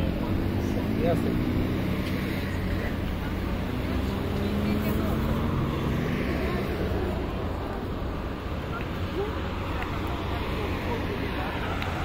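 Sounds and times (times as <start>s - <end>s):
car traffic rumble: 0.0s - 12.0s
passers-by talking: 0.0s - 12.0s.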